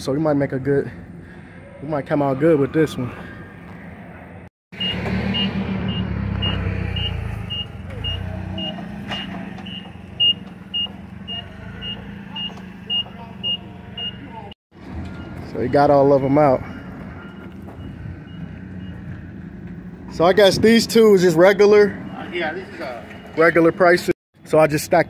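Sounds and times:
forklift warning beeper: 4.8s - 14.5s, 15.1s - 19.1s, 21.6s - 24.1s.

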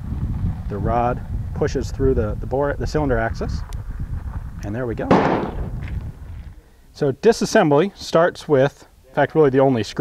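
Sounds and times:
low rumble: 3.8s - 6.5s
sharp bang with echo: 5.1s - 5.8s.

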